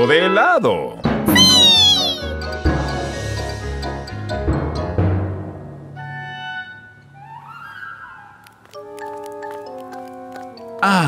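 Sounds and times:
light background music: 0:00.0 - 0:08.1
cartoon creature squeaky cry: 0:01.3 - 0:02.4.

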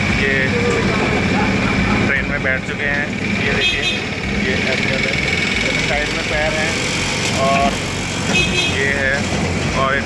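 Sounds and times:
miniature diesel train running: 0:00.0 - 0:10.0
voices: 0:00.0 - 0:10.0.

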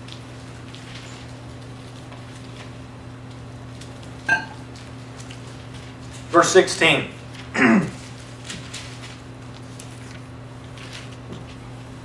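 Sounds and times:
pages turning: 0:00.0 - 0:06.4, 0:07.2 - 0:12.0
low electrical hum: 0:00.0 - 0:12.0.

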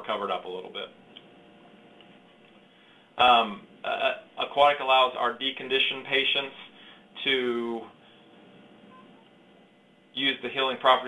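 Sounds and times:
faint short tone: 0:08.9 - 0:09.3.

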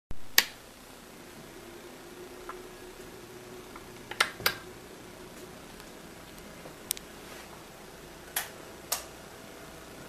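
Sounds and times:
faint steady hum: 0:00.1 - 0:10.0.

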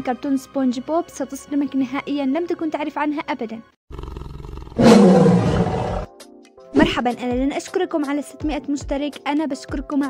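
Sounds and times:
music: 0:00.0 - 0:03.8, 0:06.1 - 0:10.0
deep monster roar: 0:04.6 - 0:06.1.

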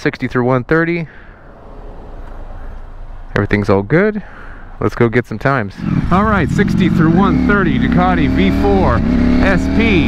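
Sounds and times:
car passing: 0:01.1 - 0:03.3, 0:05.7 - 0:10.0.

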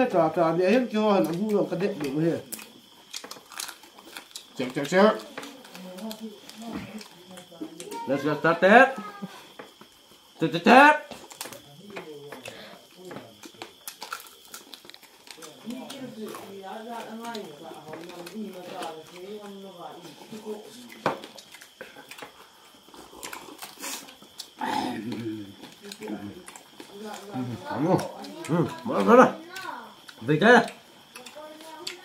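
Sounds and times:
chewing and lip-smacking: 0:01.2 - 0:08.0, 0:11.1 - 0:32.0
low voices: 0:22.9 - 0:30.7.

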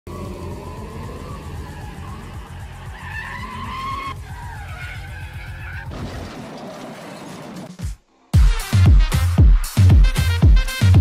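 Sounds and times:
cartoon car engine whine: 0:00.1 - 0:05.5
music: 0:07.6 - 0:11.0.

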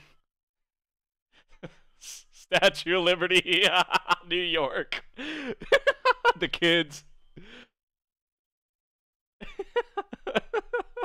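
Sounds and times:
man gasping after laughter: 0:05.2 - 0:05.7.

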